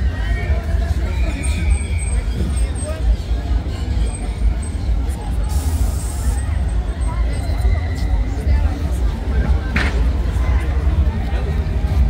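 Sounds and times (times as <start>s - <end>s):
distant chattering voices: 0.0s - 12.0s
short hiss: 5.5s - 6.4s.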